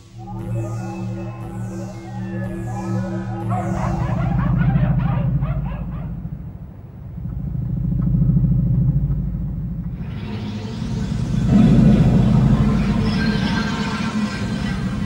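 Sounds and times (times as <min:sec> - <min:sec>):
deep low rumble: 0:04.2 - 0:15.0.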